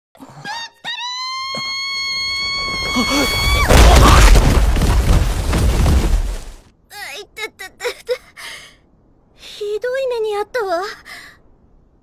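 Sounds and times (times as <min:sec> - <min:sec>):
woman screaming: 0:00.8 - 0:04.2.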